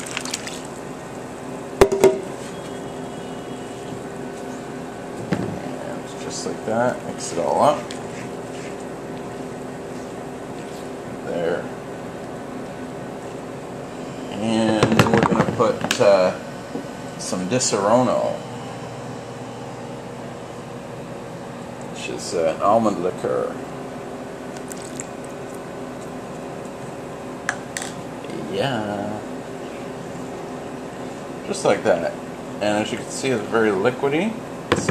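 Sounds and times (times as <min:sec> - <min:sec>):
liquid pouring into bowl: 0:00.0 - 0:00.8, 0:24.6 - 0:25.6
steady mechanical hum: 0:00.0 - 0:34.9.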